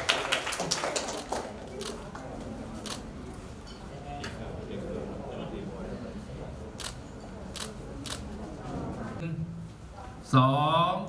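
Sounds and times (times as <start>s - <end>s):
murmur of voices: 0.0s - 11.0s
camera shutter clicks: 2.8s - 3.0s.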